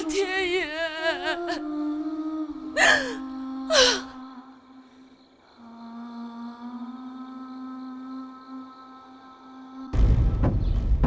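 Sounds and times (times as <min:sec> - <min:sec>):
soft dramatic soundtrack music: 0:01.6 - 0:11.0.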